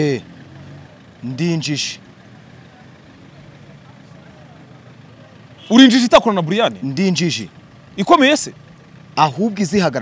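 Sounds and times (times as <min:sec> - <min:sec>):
faint distant voices: 0:00.4 - 0:06.0.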